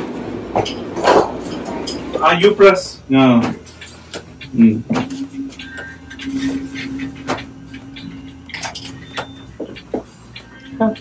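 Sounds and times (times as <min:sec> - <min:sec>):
elevator car hum: 0:00.0 - 0:11.0
short high beeps: 0:05.0 - 0:09.8.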